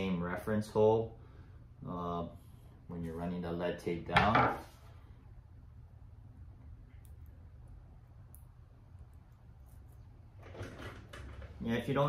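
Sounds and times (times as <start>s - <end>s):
low hum: 4.7s - 11.5s.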